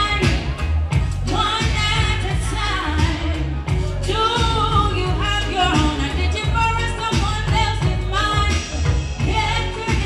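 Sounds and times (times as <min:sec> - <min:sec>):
amplified backing track with bass: 0:00.0 - 0:10.0
person singing into microphone: 0:00.0 - 0:10.0.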